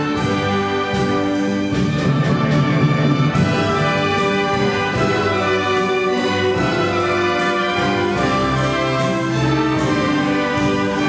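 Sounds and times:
symphony orchestra playing: 0.0s - 11.0s.

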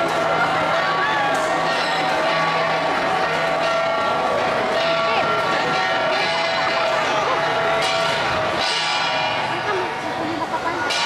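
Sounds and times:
bronze gongs ringing: 0.0s - 11.0s
crowd noise: 0.0s - 11.0s.

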